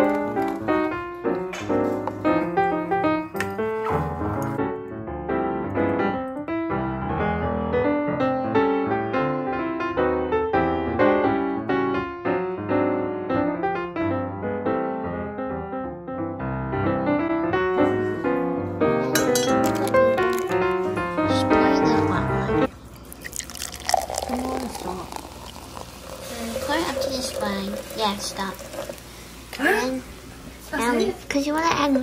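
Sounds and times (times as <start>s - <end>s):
piano background music: 0.0s - 28.9s
water poured from kettle: 23.1s - 29.2s
woman's voice: 24.2s - 25.2s.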